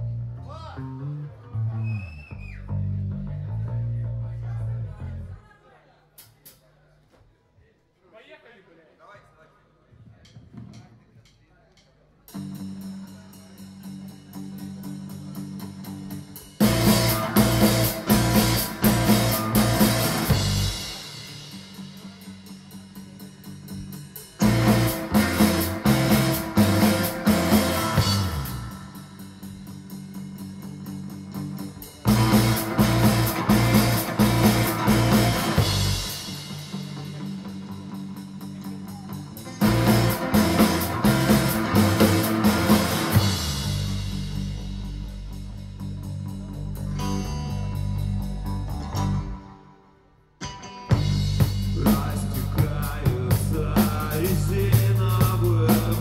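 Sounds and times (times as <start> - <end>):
rock band playing: 12.3 - 49.8, 50.4 - 56.0.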